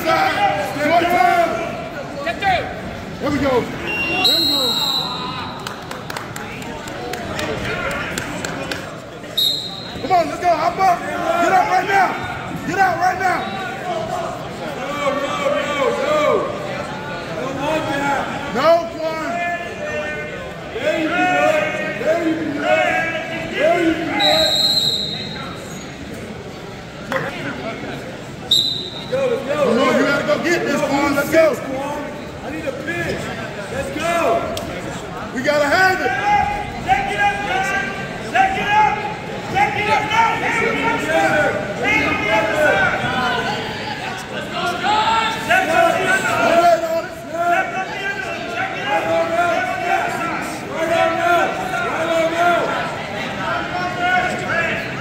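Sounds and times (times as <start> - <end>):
crowd voices: 0.0 - 55.0
referee's whistle blowing: 3.8 - 5.6, 9.3 - 10.1, 24.1 - 25.9, 28.5 - 29.2.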